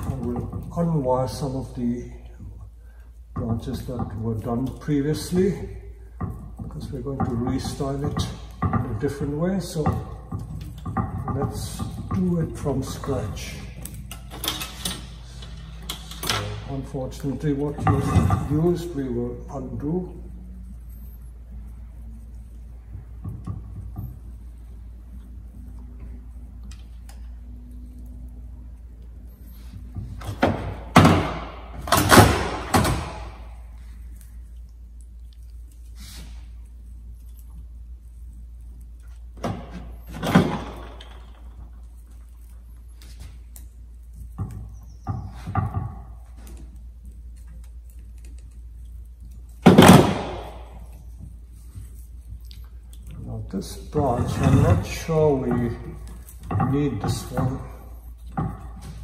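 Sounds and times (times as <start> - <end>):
knocks and clatters of tools: 0.0 - 19.9, 20.6 - 34.3, 38.8 - 59.0.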